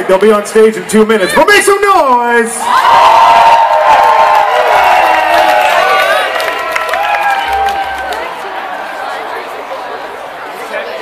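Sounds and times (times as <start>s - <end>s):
crowd cheering and screaming: 2.6s - 10.2s
scattered clapping: 5.1s - 8.4s.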